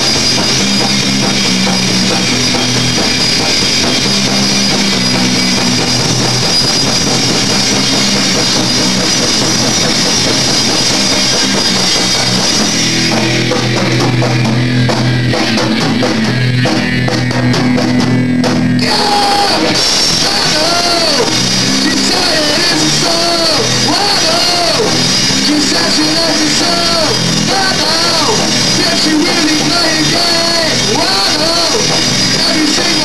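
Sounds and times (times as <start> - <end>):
cymbals: 0.0 - 33.0
drum kit: 0.0 - 33.0
electric guitar: 0.0 - 33.0.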